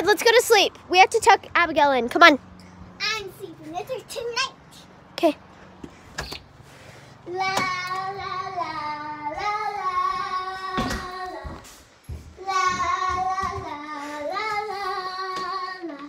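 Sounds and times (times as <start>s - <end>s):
girl singing: 7.2s - 16.0s.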